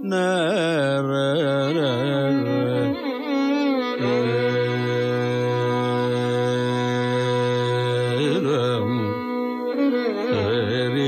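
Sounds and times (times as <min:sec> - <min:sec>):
man singing a long held note: 0:00.0 - 0:11.0.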